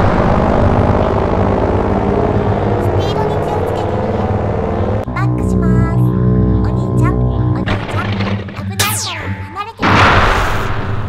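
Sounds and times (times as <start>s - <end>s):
music: 4.8s - 10.7s
explosion tail: 9.8s - 11.0s.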